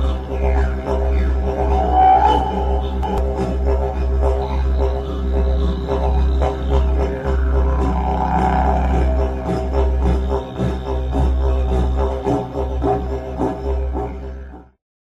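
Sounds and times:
didgeridoo drone: 0:00.0 - 0:14.7.

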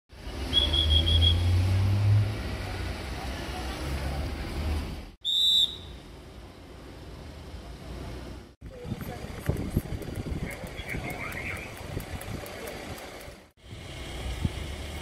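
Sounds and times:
traffic noise: 0:00.1 - 0:15.0
vehicle engine rumbling: 0:00.1 - 0:15.0
whistle-like beep: 0:00.5 - 0:01.5, 0:05.2 - 0:06.0.

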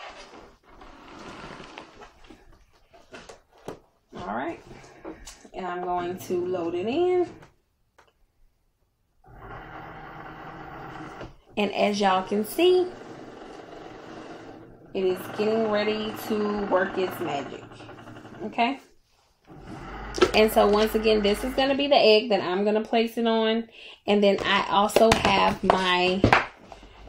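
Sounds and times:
cutting machine running: 0:11.9 - 0:18.5, 0:19.5 - 0:21.8.

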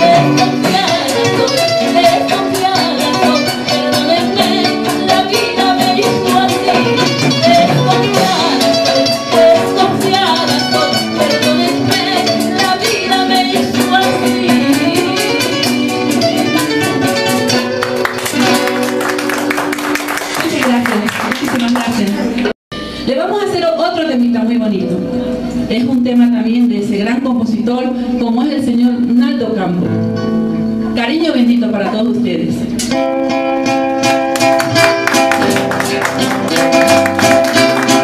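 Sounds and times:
woman singing: 0:00.0 - 0:16.0
plucked guitars: 0:00.0 - 0:23.0, 0:29.8 - 0:31.0, 0:32.7 - 0:38.0
timbales and percussion rhythm: 0:13.5 - 0:20.7, 0:33.8 - 0:38.0.

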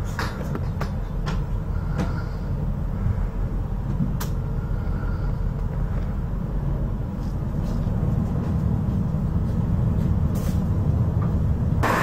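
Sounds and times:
ferry engines low rumble: 0:00.0 - 0:12.0.

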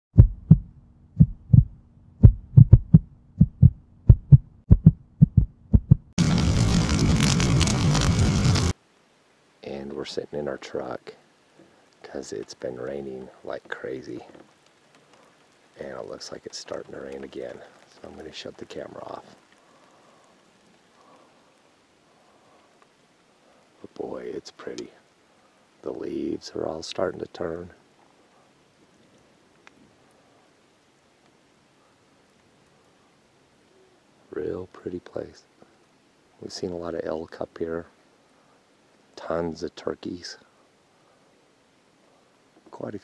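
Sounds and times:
short low thumps: 0:00.1 - 0:06.2
loud hissing noise: 0:06.2 - 0:08.8
light rain hissing: 0:06.2 - 0:43.0.

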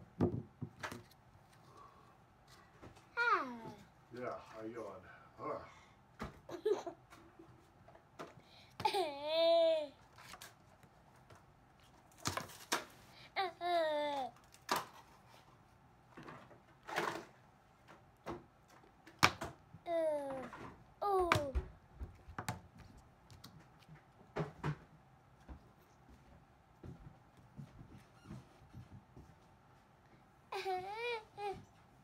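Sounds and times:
toddler babbling: 0:03.2 - 0:03.9, 0:08.8 - 0:10.0, 0:13.3 - 0:14.3, 0:19.9 - 0:21.6, 0:30.5 - 0:31.6.

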